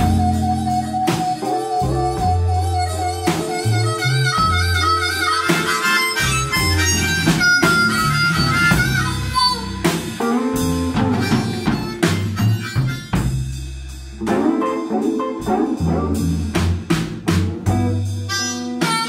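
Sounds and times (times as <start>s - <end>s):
electric guitar: 0.0s - 13.3s, 14.2s - 19.0s
harmonica lead line: 0.0s - 16.5s, 17.4s - 19.0s
drum kit beat: 0.0s - 19.0s
electric bass: 0.0s - 19.0s.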